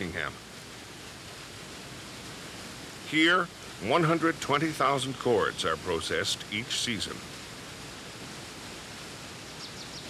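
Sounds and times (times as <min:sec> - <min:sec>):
water rushing through sluice: 0:00.0 - 0:10.0.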